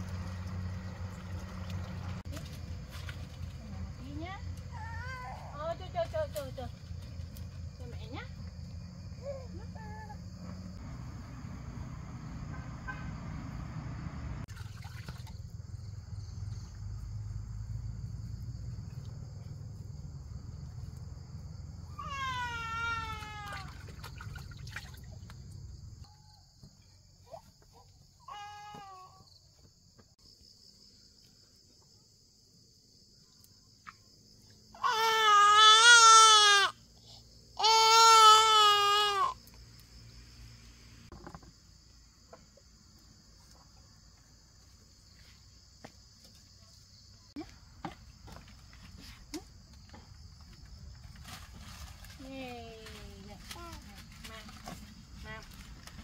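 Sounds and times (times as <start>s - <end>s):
insects chirring: 0.0s - 56.0s
baby crying: 34.8s - 36.8s, 37.6s - 39.4s.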